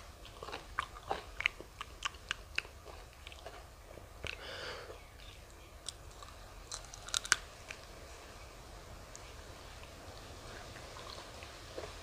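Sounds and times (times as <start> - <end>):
person chewing: 0.0 - 7.9, 10.5 - 12.0
crunchy bites into fruit: 5.8 - 7.8.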